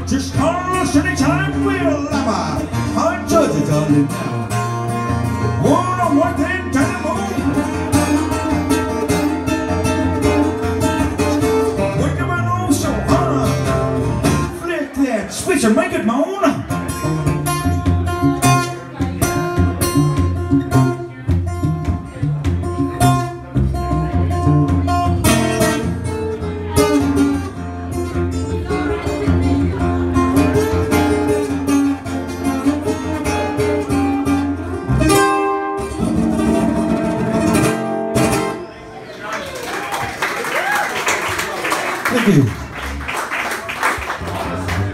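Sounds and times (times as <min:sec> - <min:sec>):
solo acoustic guitar strumming: 0:00.0 - 0:14.6, 0:16.6 - 0:38.8.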